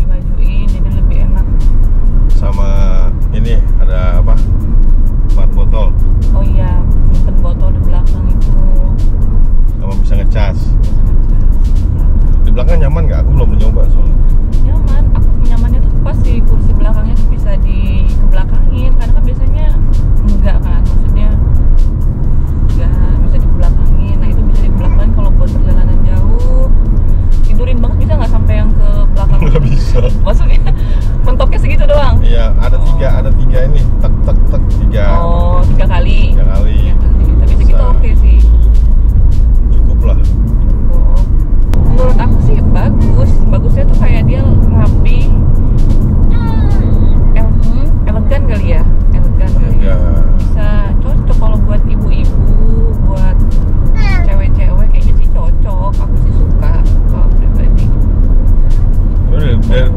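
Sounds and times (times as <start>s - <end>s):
people talking: 0.0s - 1.6s, 2.4s - 4.4s, 5.4s - 9.0s, 9.8s - 10.7s, 12.5s - 21.4s, 22.7s - 26.8s, 27.4s - 38.6s, 39.8s - 45.4s, 46.3s - 53.4s, 54.0s - 57.9s, 59.3s - 59.9s
background music: 0.0s - 59.9s
low rumble of road noise: 0.0s - 59.9s.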